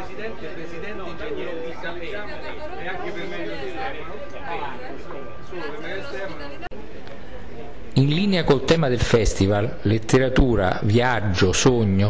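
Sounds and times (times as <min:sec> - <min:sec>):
indistinct group chatter: 0:00.0 - 0:12.0.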